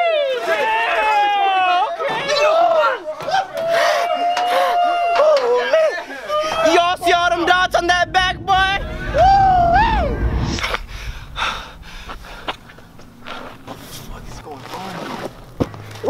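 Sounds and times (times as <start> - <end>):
low rumble: 6.2 - 16.0.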